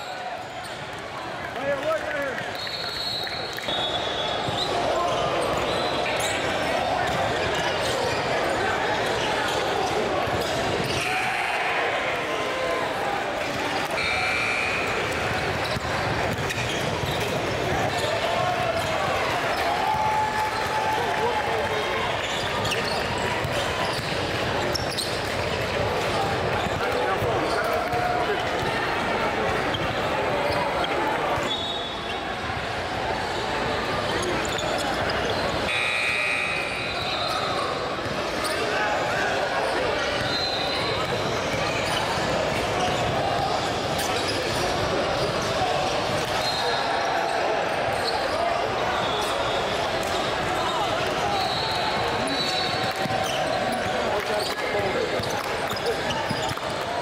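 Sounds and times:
chatter of players and spectators: 0.0s - 57.0s.

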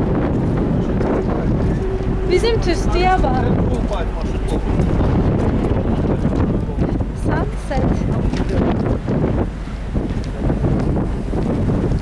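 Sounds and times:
ship engine noise: 0.0s - 12.0s
wind buffeting microphone: 0.0s - 12.0s.

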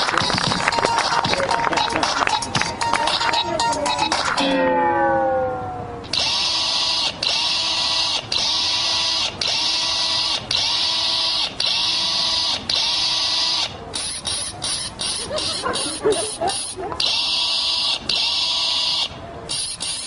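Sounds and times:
buzzing electronic whirr: 6.0s - 20.0s.

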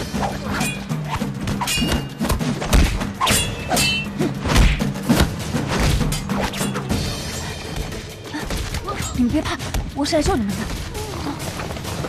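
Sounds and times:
metallic blade ring: 1.6s - 2.2s, 3.2s - 4.2s.

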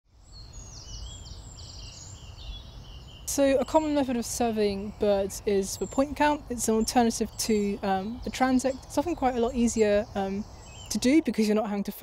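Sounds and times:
songbirds chirping and trilling: 0.1s - 12.0s
low outdoor rumble: 3.2s - 12.0s.

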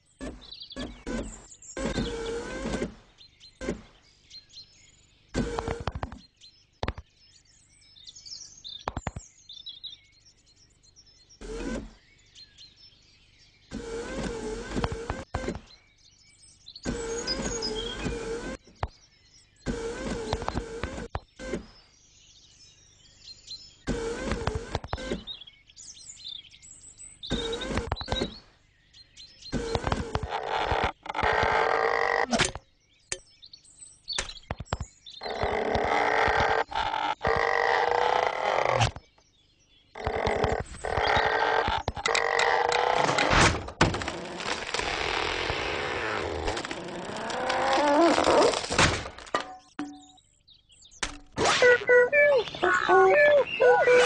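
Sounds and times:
cartoon sound effects: 51.3s - 54.0s
comic wobbling sound: 51.4s - 54.0s.

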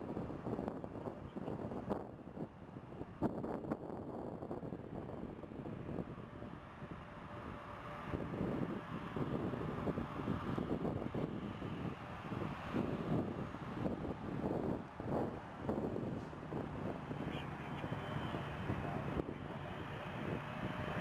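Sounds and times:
jet engines at takeoff thrust: 0.0s - 21.0s
wind buffeting microphone: 0.0s - 21.0s.

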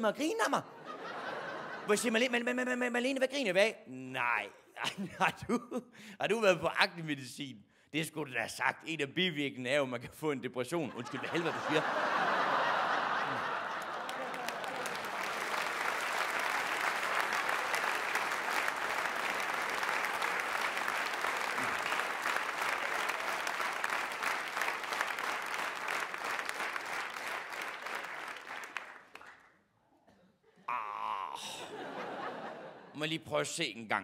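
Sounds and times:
audience applauding: 11.1s - 29.6s.

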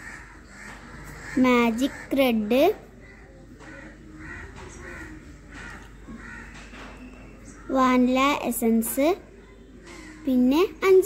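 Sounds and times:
crows cawing: 0.0s - 7.9s, 9.8s - 10.4s.

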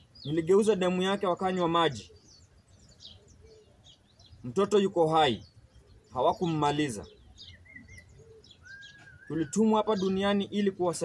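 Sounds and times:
birds chirping: 0.0s - 11.0s
thin whistled bird notes: 5.4s - 10.2s.

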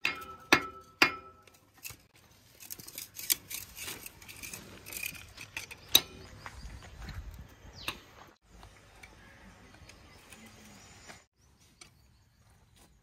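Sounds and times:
metal rod scraping dirt: 0.0s - 6.3s.

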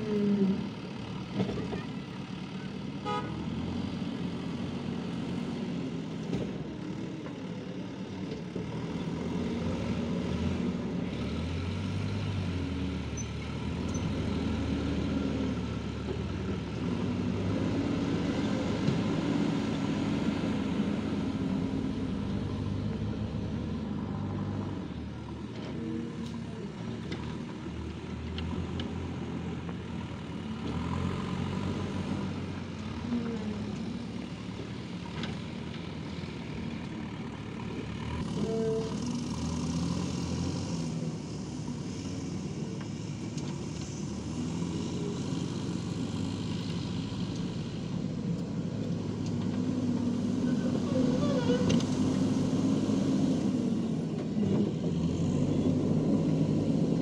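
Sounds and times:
diesel engine revving: 0.0s - 57.0s.

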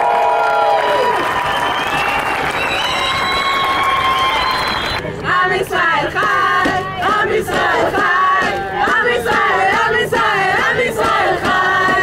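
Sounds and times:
crowd chanting: 5.2s - 12.0s.

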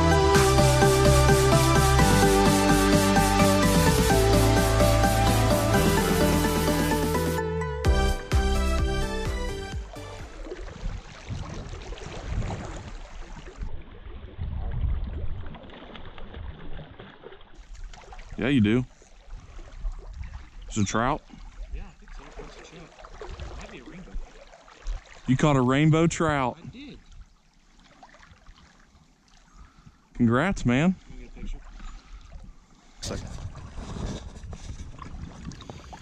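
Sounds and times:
creek water rippling: 0.0s - 36.0s
wind on microphone: 10.4s - 16.9s, 19.3s - 20.7s, 23.2s - 24.3s, 32.2s - 36.0s.

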